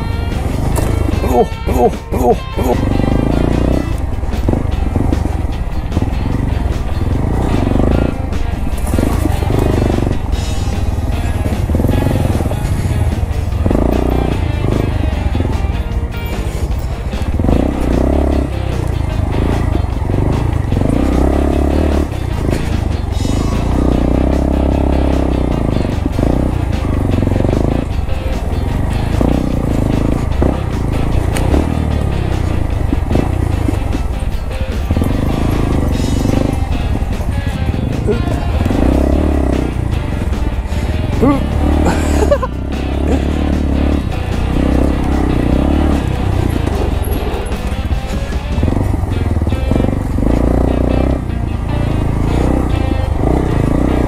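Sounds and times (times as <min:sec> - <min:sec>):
background music: 0:00.0 - 0:54.0
motorcycle engine running: 0:00.0 - 0:54.0.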